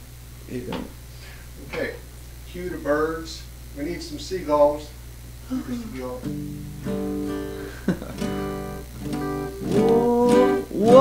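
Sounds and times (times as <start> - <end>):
acoustic guitar chords strummed: 5.7 - 11.0.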